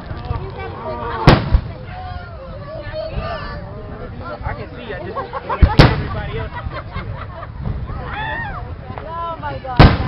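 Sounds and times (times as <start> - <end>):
people's voices: 0.0 - 10.0
firework bang: 1.2 - 2.0, 5.6 - 6.4, 9.8 - 10.0.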